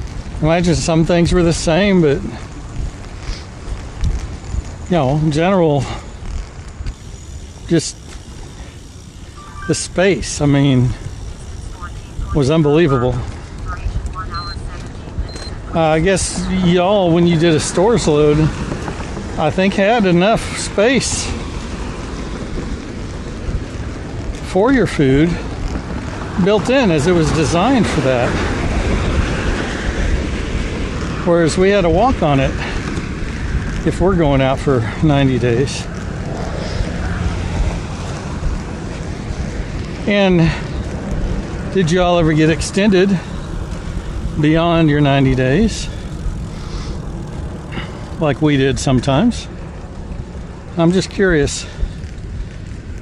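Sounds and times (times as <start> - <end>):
tyres rolling on concrete: 0.0 - 53.0
wind buffeting microphone: 0.0 - 53.0.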